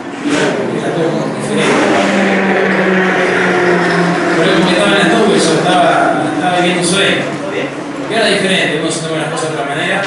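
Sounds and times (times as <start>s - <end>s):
racing car engine drone: 0.0s - 10.0s.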